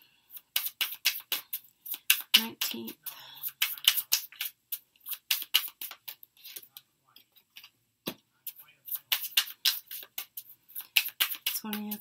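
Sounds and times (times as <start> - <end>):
cards being shuffled: 0.4 - 6.7, 8.5 - 12.0.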